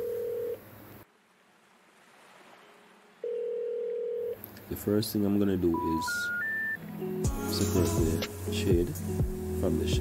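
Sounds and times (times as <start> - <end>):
electronic beep tone: 5.7 - 6.8.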